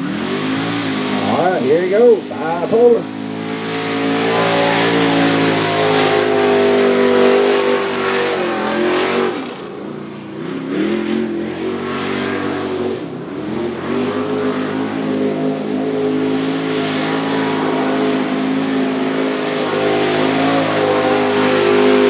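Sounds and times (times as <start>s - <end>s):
race truck engine at high revs: 0.0s - 22.0s.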